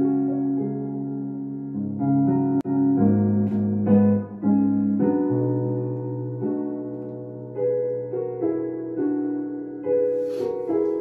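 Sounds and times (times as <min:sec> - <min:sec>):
piano slow sustained chords: 0:00.0 - 0:11.0.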